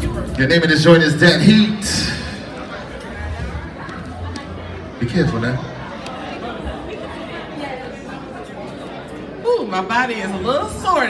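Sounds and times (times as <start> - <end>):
people chatting in echoing hall: 0.0 - 11.0.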